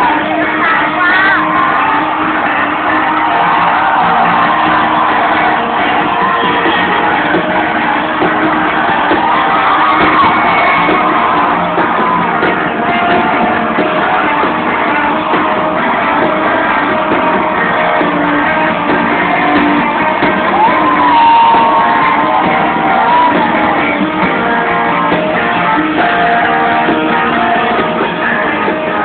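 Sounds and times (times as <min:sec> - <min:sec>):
crowd shouting and whooping: 0:00.0 - 0:29.0
live rock band playing: 0:00.0 - 0:29.0.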